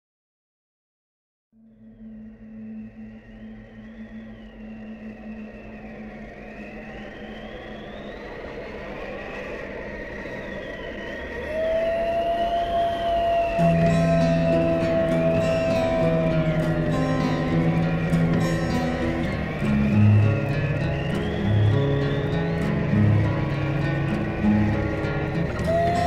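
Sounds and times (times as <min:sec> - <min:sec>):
thin high wavering tone: 0:01.6 - 0:09.3
low drone: 0:01.6 - 0:26.0
steady higher tone: 0:01.6 - 0:26.0
low notes: 0:13.0 - 0:26.0.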